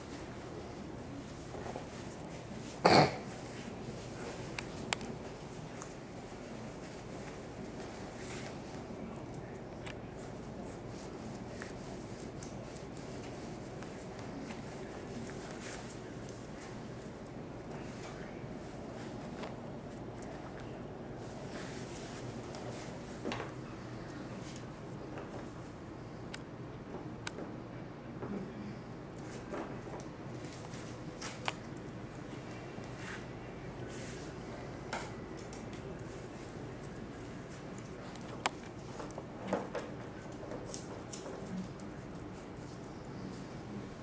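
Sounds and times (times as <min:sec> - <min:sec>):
low background noise: 0:00.0 - 0:44.0.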